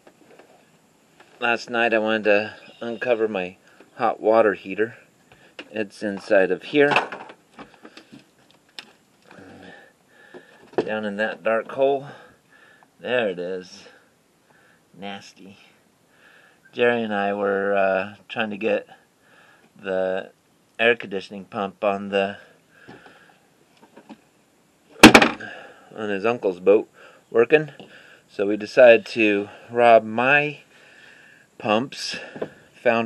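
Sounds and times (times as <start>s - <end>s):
sharp knocks: 25.0s - 25.4s.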